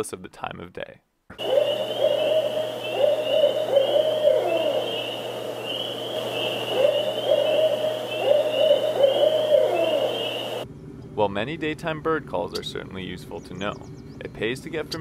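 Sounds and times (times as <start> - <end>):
owl hooting: 1.3 - 10.6.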